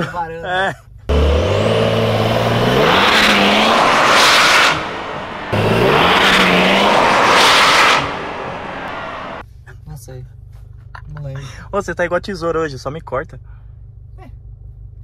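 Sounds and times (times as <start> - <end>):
car engine revving: 1.1 - 9.4.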